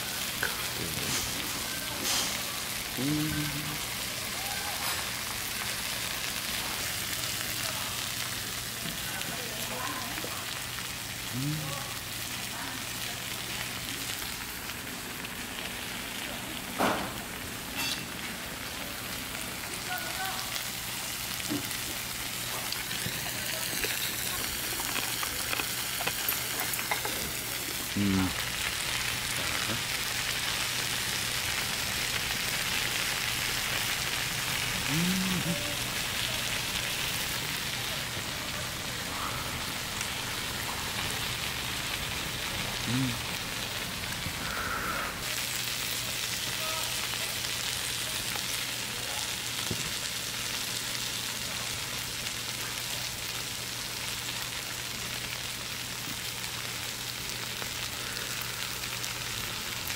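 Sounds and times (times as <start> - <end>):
meat sizzling on a griddle: 0.0 - 59.9
person humming: 2.9 - 4.0, 11.3 - 11.8, 27.9 - 28.4, 34.8 - 36.0, 42.8 - 43.4.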